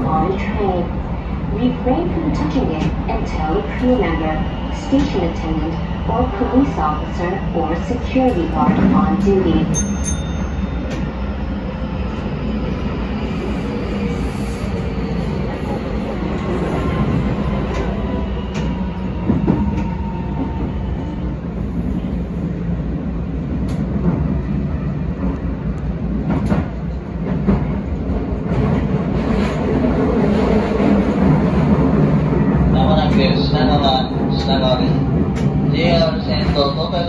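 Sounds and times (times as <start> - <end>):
electric train running rumble: 0.0 - 37.0.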